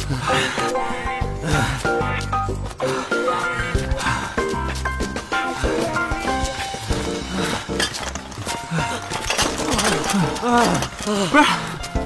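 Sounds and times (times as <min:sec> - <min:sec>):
background music: 0:00.0 - 0:12.0
men panting and groaning: 0:00.0 - 0:12.0.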